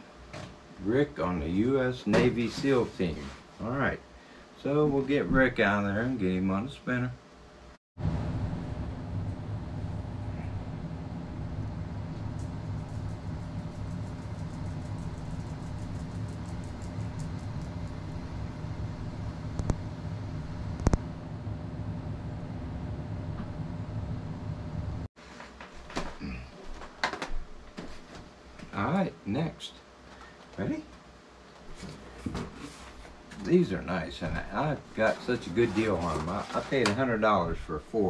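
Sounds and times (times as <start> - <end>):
rustles and knocks: 31.6 - 33.5.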